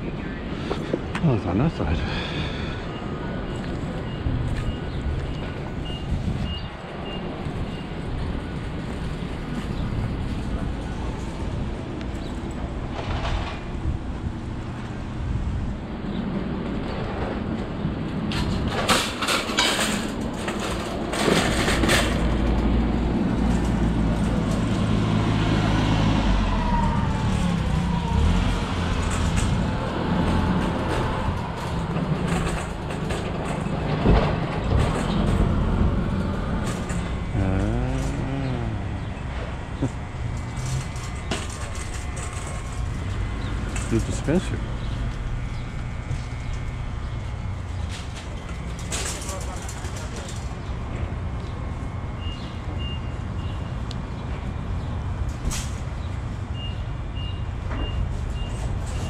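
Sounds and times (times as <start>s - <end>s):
vehicle engines running: 0.0s - 59.0s.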